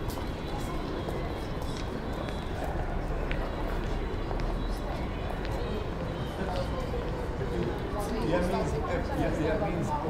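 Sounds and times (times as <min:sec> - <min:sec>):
indistinct voices of passers-by: 0:00.0 - 0:10.0.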